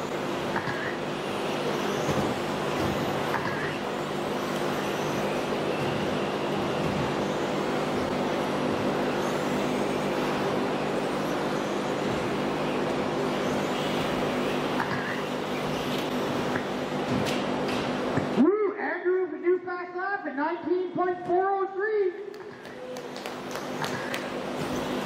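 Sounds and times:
rc car motors whirring: 0:00.0 - 0:16.7
constant low hum: 0:00.0 - 0:25.0.

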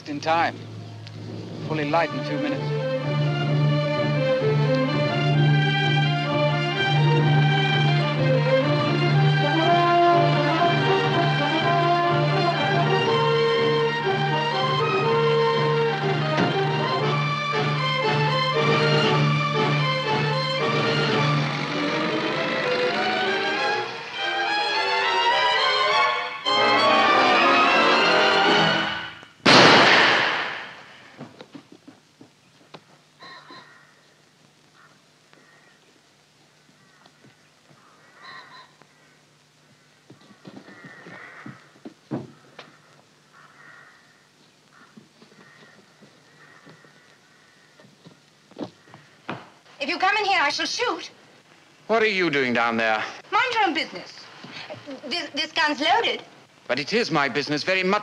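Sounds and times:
orchestral music with strings: 0:01.6 - 0:29.2
loud crash: 0:29.4 - 0:31.2
footsteps on outdoor path: 0:30.9 - 0:38.0, 0:39.6 - 0:49.8
faint clicks: 0:44.6 - 0:49.1.

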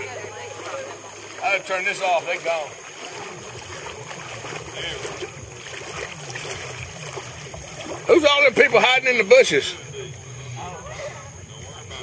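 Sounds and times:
faint distant voices: 0:00.0 - 0:12.0
water lapping around boat: 0:00.0 - 0:12.0.

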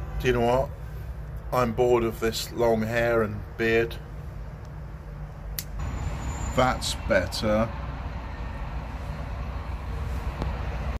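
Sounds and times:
low street rumble: 0:00.0 - 0:10.9.

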